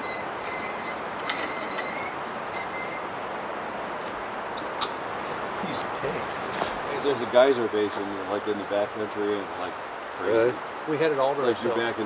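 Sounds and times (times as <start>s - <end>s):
pulley and line squeaking: 0.0s - 3.6s
creek water rushing: 3.1s - 12.0s.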